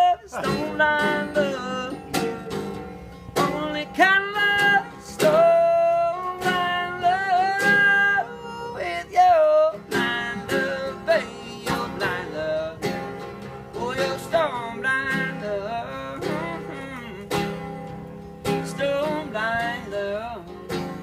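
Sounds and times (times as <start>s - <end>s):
sustained gliding guitar notes: 0.0s - 21.0s.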